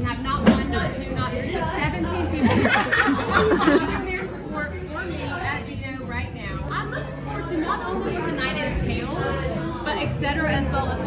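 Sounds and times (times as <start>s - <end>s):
table chatter: 0.5s - 4.4s.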